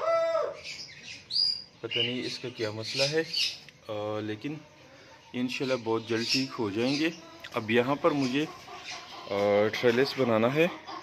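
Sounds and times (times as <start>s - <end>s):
small bird chirping: 0.6s - 4.6s.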